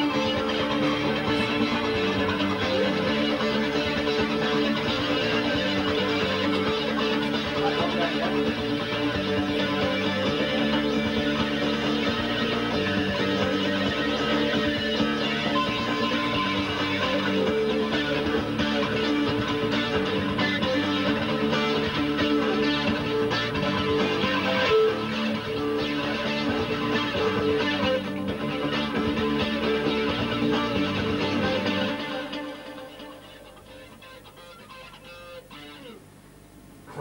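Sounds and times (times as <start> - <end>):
band track with guitars: 0.0 - 36.1.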